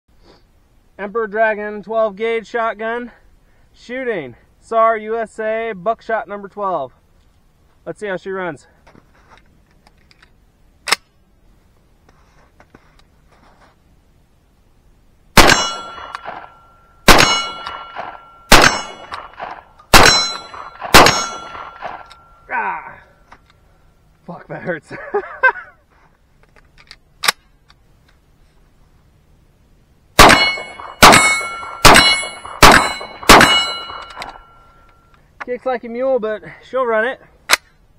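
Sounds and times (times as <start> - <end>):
shotgun metallic clack: 15.4 - 22.3, 30.2 - 35.0
metallic ringing tone: 15.5 - 19.0, 20.0 - 23.3, 30.3 - 35.2.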